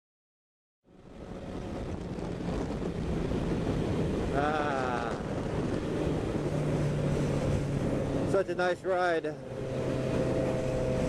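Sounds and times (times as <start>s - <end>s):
motorcycle engine cruising: 0.9s - 11.0s
wind noise: 1.0s - 8.7s.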